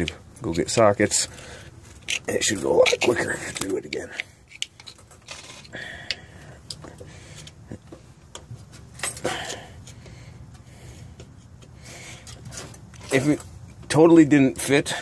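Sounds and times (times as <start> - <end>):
hand tools clicking and rubbing: 1.9 - 13.5.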